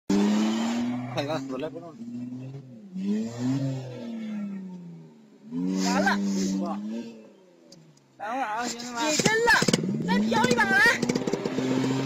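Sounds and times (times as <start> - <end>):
car engine running: 0.1 - 12.0
car tyres skidding: 0.1 - 12.0.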